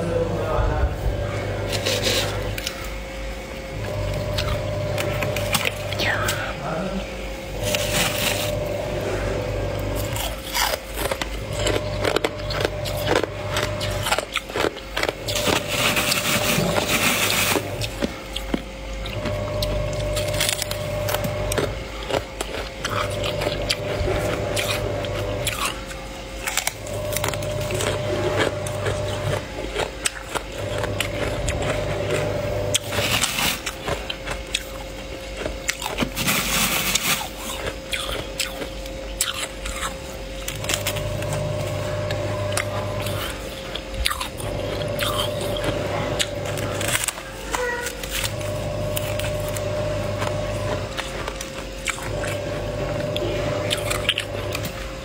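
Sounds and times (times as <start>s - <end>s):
frost being scraped off: 1.7s - 2.7s, 7.6s - 9.2s.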